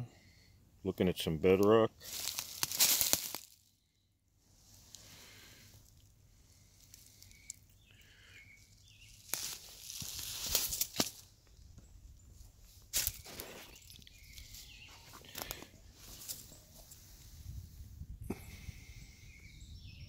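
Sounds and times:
footsteps on dry leaves: 2.0s - 3.7s, 9.0s - 11.3s, 12.6s - 16.9s
twigs snapping: 2.1s - 3.6s, 9.2s - 11.3s.

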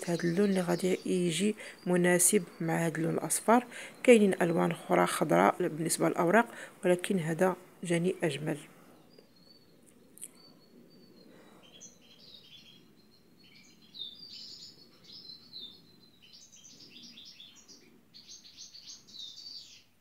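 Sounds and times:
small bird chirping: 0.0s - 6.2s, 7.0s - 20.0s.

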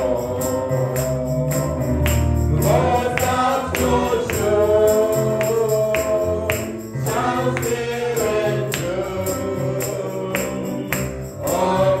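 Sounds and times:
steady percussion beat: 0.0s - 12.0s
voices singing gospel: 0.0s - 12.0s.

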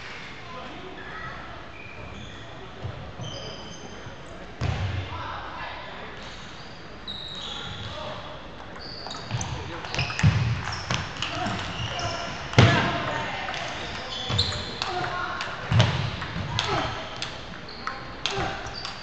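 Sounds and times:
voices: 7.1s - 19.0s
shoes squeaking on wooden floor: 13.9s - 15.2s.

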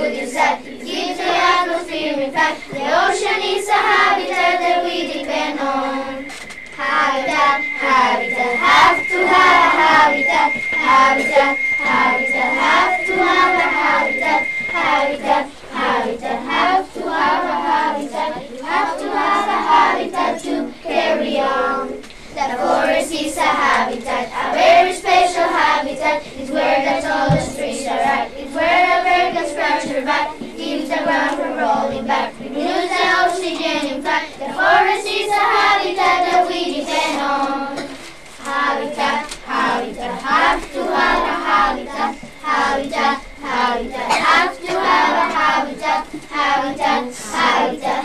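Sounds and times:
children singing in chorus: 0.0s - 48.0s.

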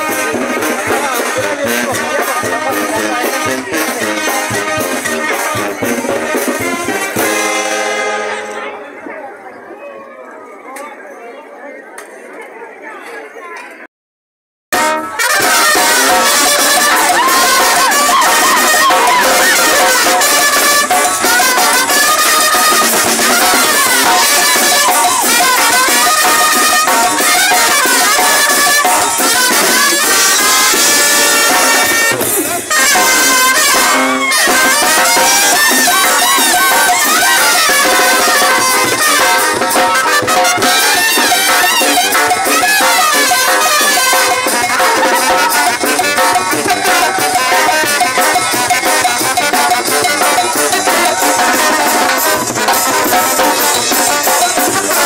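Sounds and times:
bass drum: 0.0s - 7.8s
snare drums: 0.0s - 8.6s, 14.7s - 55.0s
brass band playing: 0.0s - 9.0s, 14.7s - 55.0s.

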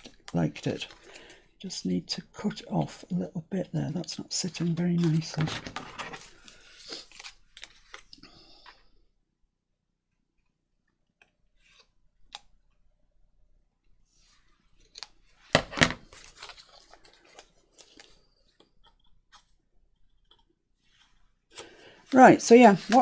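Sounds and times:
paper rustling: 4.5s - 8.1s, 14.2s - 19.6s, 20.8s - 23.0s.

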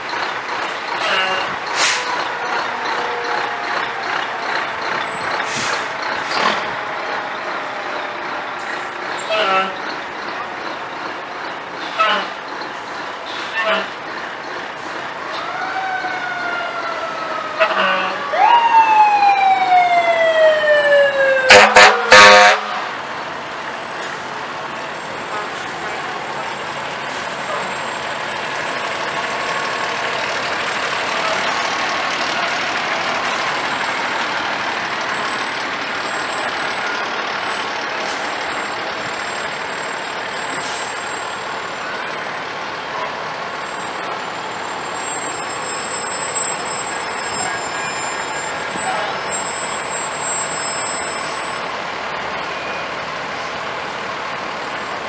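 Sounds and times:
fire engines running: 0.0s - 55.0s
loud horn blast: 21.5s - 23.0s.

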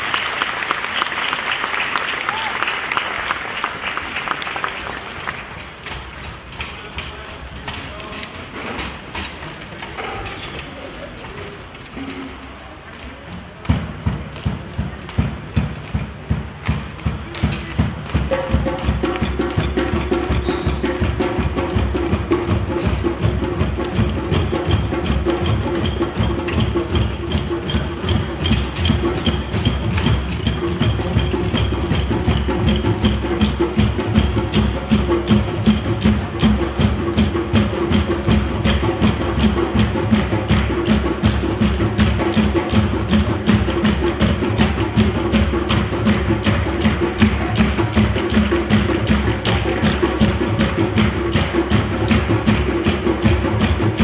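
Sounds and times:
djembe hand drums: 13.7s - 54.0s.

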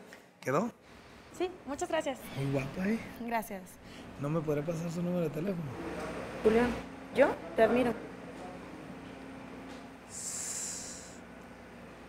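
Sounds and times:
man hissing breath through teeth: 10.1s - 11.2s.

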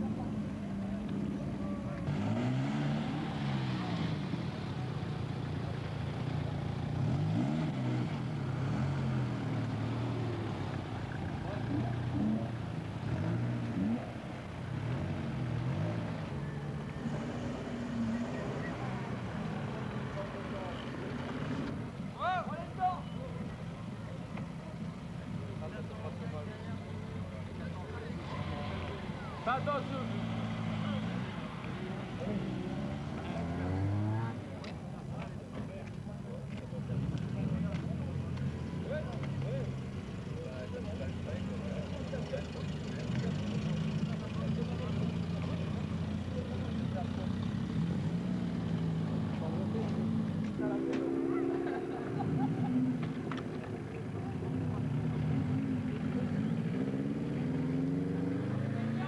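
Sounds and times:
car engines passing by: 0.0s - 59.0s
crowd voices: 0.0s - 59.0s.

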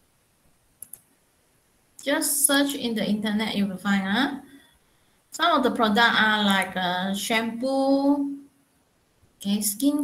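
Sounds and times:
faint clicks: 0.8s - 1.2s.

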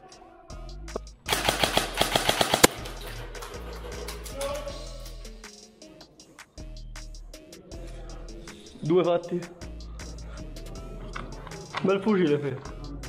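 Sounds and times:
background music: 0.0s - 13.0s
airsoft gun full-auto burst: 1.3s - 3.0s.

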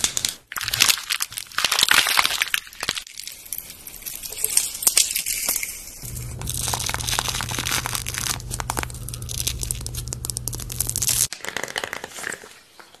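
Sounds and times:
plastic packets crinkling: 0.0s - 12.4s
peel-off mask tearing from skin: 6.0s - 11.3s
steady low hum: 6.0s - 11.3s.

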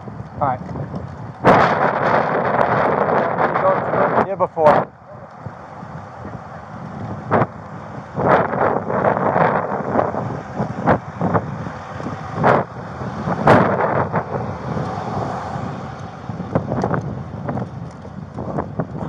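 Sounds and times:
wind noise on microphone: 0.0s - 19.0s.

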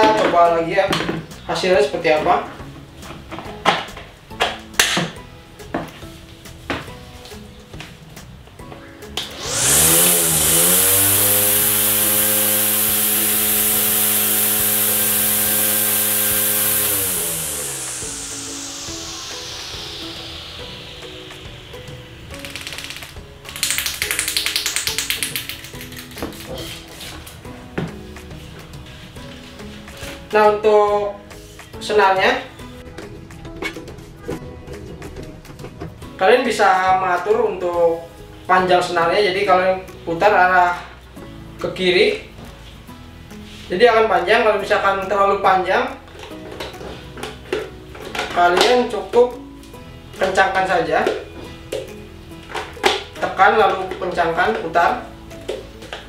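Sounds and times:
grass trimmer motor whining: 9.2s - 23.8s
short burst of noise: 9.3s - 23.2s.

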